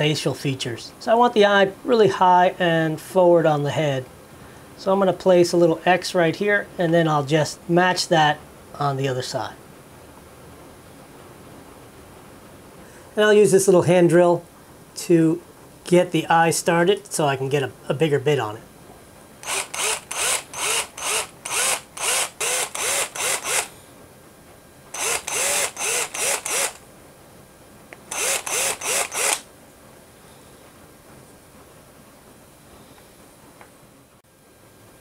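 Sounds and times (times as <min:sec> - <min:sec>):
cordless drill pulsing: 0:19.4 - 0:23.8, 0:24.9 - 0:26.8, 0:28.0 - 0:29.5.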